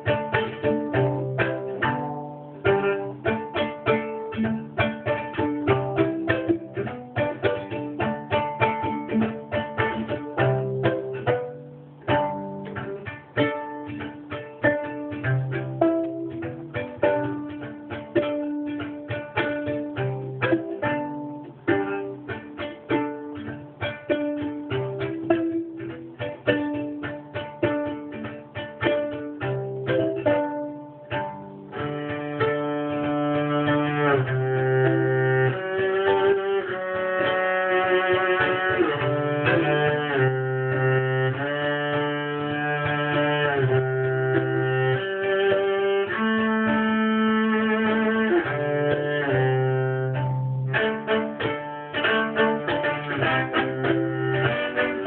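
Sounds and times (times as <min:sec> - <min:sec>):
bowed viola sustained notes: 0:00.0 - 0:55.0
viola plucked notes: 0:00.0 - 0:55.0.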